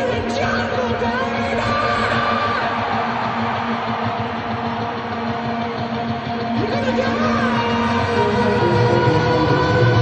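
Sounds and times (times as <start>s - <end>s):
arena crowd noise: 0.0s - 10.0s
rock band holding low note: 0.9s - 10.0s.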